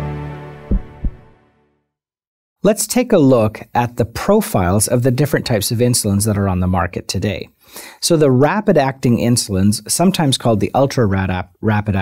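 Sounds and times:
deep thumps: 0.7 - 1.3.

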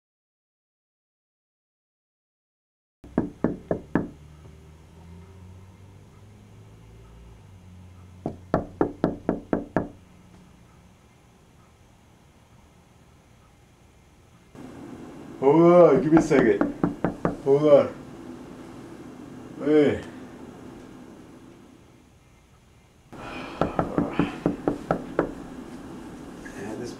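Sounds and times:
knocking on a door: 3.0 - 4.2, 8.2 - 10.0, 16.2 - 17.4, 23.6 - 25.4
low room hum: 3.1 - 26.9.

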